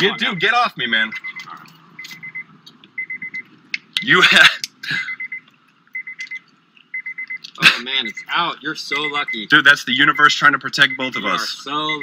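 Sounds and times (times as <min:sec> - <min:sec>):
car warning chime beeping: 0:00.0 - 0:04.2, 0:05.0 - 0:12.0.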